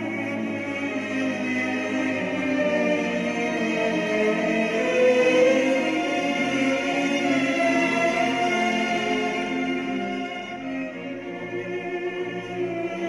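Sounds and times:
orchestral music with sustained strings: 0.0s - 13.0s.

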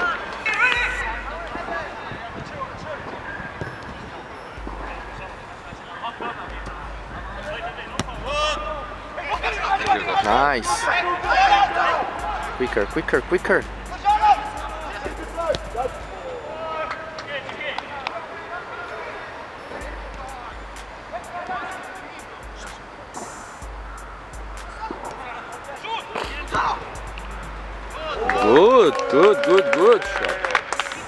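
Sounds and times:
distant players shouting: 7.4s - 22.9s, 23.6s - 31.0s.

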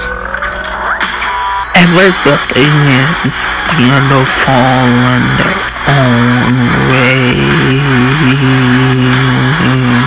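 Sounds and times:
man singing a low held note: 3.7s - 10.0s.

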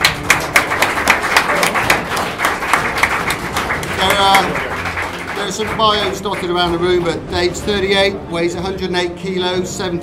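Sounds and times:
crowd clapping: 0.0s - 8.1s.

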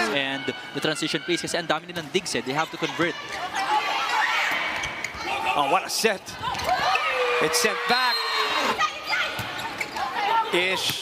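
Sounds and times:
crowd noise: 0.0s - 11.0s
shoes squeaking on court: 8.2s - 11.0s.

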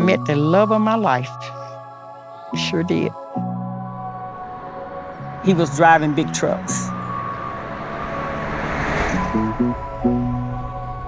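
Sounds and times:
vehicle approaching on road: 3.9s - 11.0s.

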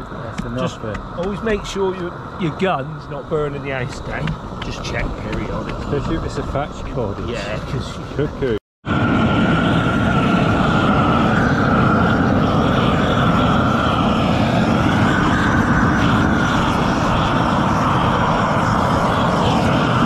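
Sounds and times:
roofing torch burning: 0.0s - 20.0s.

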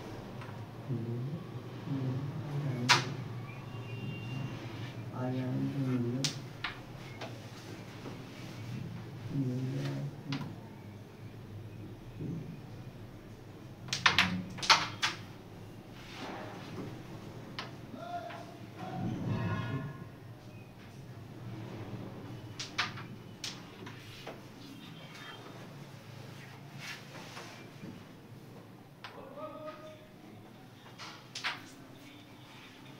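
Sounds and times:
carrom pieces clicking on board: 13.9s - 15.3s, 22.6s - 24.4s.

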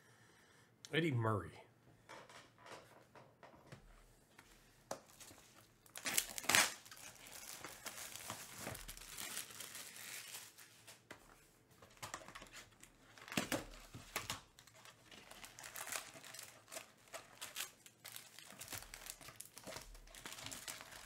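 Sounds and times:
foil packs crinkling: 5.1s - 11.0s, 12.0s - 21.0s.

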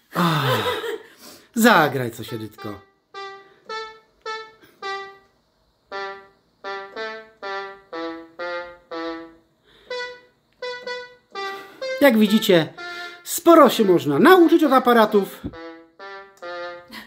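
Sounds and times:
mini keyboard melody: 1.6s - 17.0s.

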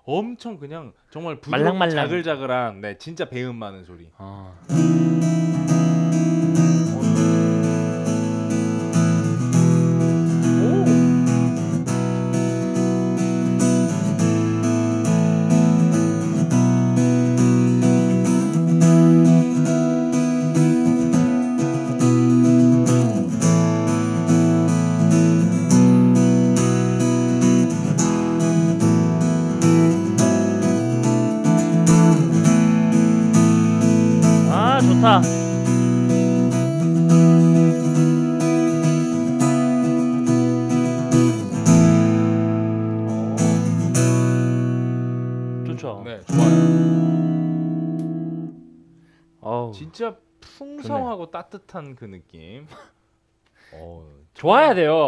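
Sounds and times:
amplified acoustic guitar strumming: 4.6s - 49.3s.

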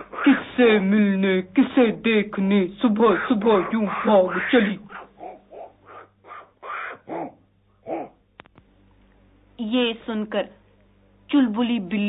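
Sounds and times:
monkey chattering: 3.0s - 8.2s.

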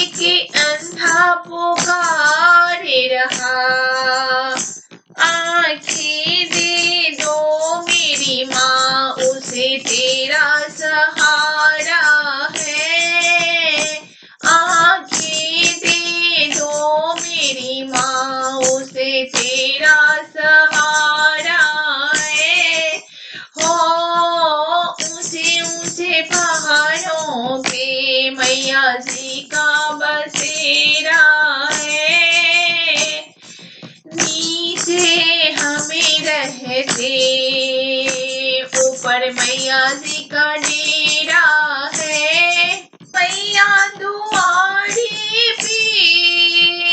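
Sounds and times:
high voice singing devotional song: 0.0s - 46.9s.

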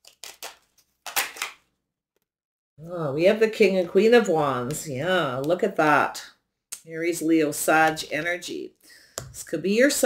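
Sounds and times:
cards rustling and slapping: 0.0s - 1.6s.

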